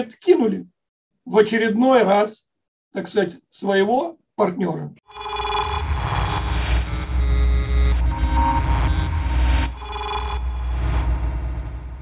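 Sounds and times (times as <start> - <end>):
noisy synthesizer layer: 5.1 - 12.0
deep bass rumble: 5.9 - 12.0.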